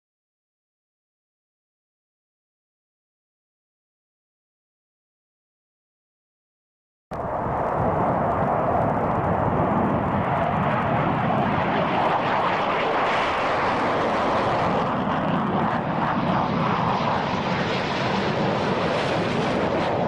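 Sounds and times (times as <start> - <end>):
jet engine roaring: 7.2 - 20.0.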